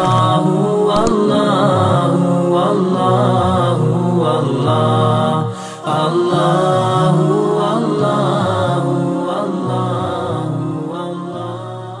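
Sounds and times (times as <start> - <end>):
chanted vocal music: 0.0 - 12.0.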